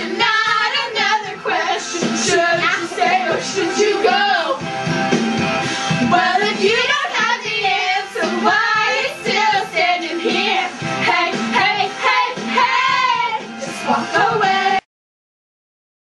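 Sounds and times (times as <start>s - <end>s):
high voices singing with music: 0.0s - 14.9s.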